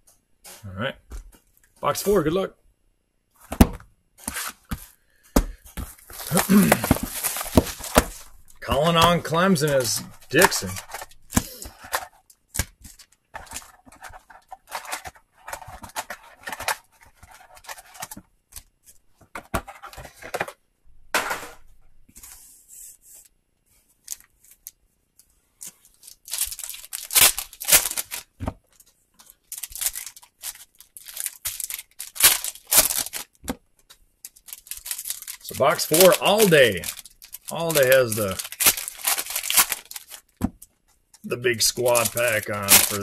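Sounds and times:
foil wrappers crinkling and tearing: 0:05.9 - 0:12.2, 0:25.7 - 0:33.4, 0:34.2 - 0:40.4, 0:41.3 - 0:43.0.

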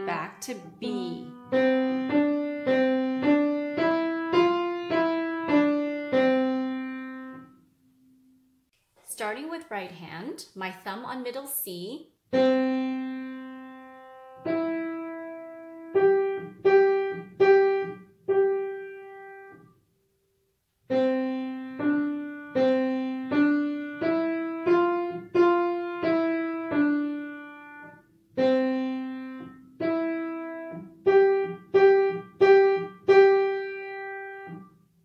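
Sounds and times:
slow piano melody: 0:00.0 - 0:08.6, 0:12.3 - 0:19.8, 0:20.8 - 0:35.0.

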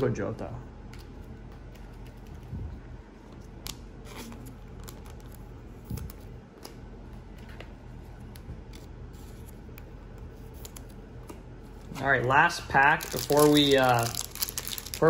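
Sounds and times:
plastic rustling: 0:11.9 - 0:15.0.

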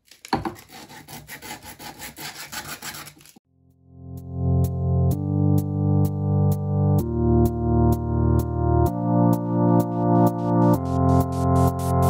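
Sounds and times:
sandpaper rubbing: 0:00.6 - 0:03.4
electronic music: 0:03.9 - 0:12.0.

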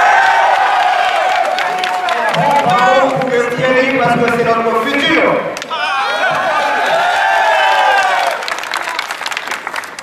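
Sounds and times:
crowd applause: 0:00.0 - 0:03.8, 0:05.6 - 0:10.0.

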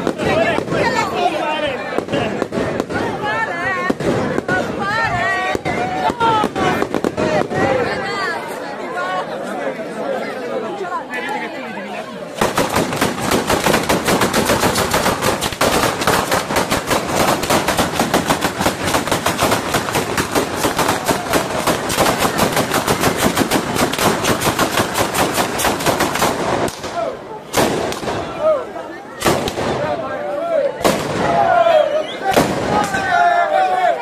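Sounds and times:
firecrackers exploding in rapid run: 0:00.0 - 0:07.9, 0:12.4 - 0:28.4, 0:29.2 - 0:30.0, 0:30.8 - 0:31.5, 0:32.3 - 0:33.1.

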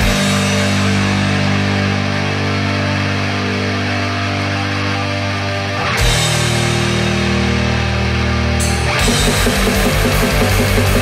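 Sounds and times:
black metal distorted guitars: 0:00.0 - 0:11.0.

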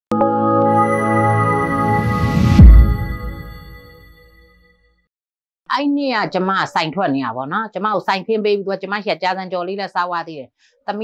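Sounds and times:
deep falling boom: 0:01.8 - 0:03.9.

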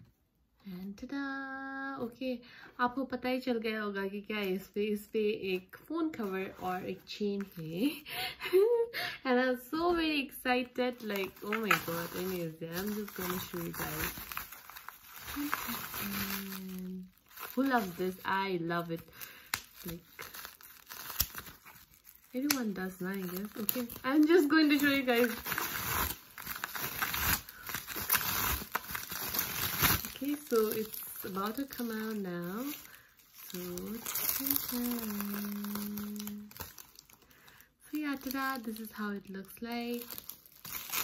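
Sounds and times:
person speaking: 0:09.5 - 0:14.2, 0:15.3 - 0:19.1, 0:30.1 - 0:36.5
bubble wrap crinkling: 0:10.8 - 0:41.0.

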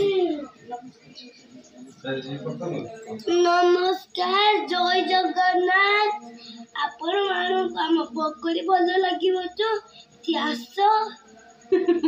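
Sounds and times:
child singing: 0:03.1 - 0:11.2.

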